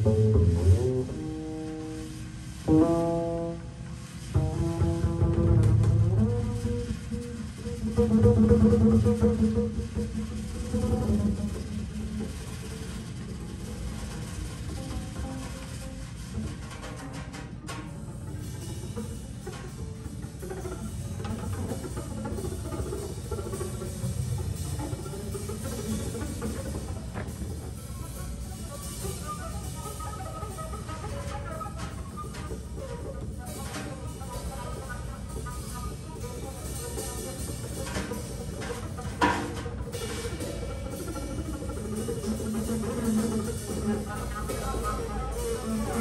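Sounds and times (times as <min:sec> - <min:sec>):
upright double bass: 0:00.0 - 0:11.9
bowed double bass: 0:00.0 - 0:16.7, 0:18.0 - 0:46.0
drum kit: 0:00.0 - 0:46.0.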